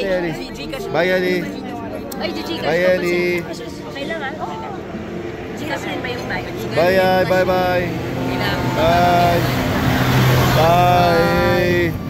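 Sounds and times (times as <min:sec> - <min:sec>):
people calling bye: 0:00.0 - 0:12.0
vehicle engine passing: 0:00.0 - 0:12.0.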